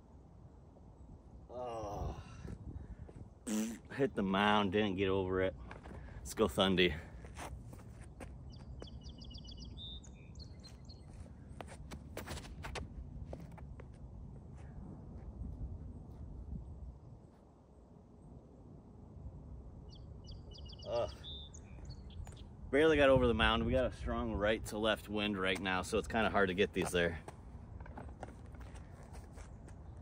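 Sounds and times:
wind buffeting microphone: 1.9 - 3.4, 14.4 - 17.3, 21.8 - 24.8
bird trilled chirps: 8.5 - 11.1, 19.9 - 22.5.

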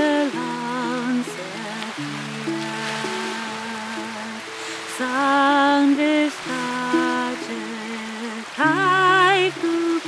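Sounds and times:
acoustic guitar: 0.0 - 10.0
woman singing: 0.0 - 10.0.

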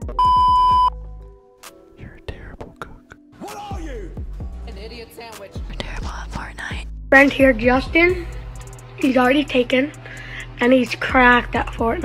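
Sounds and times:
high-pitched test tone beep: 0.2 - 0.9.

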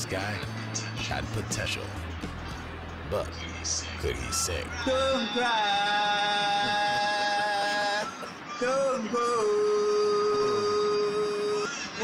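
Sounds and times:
man singing: 3.4 - 12.0.

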